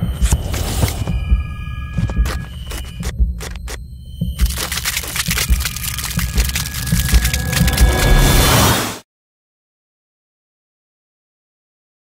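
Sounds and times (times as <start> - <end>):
low thumps: 0.0 - 8.2
dense crackling noise: 2.1 - 8.3.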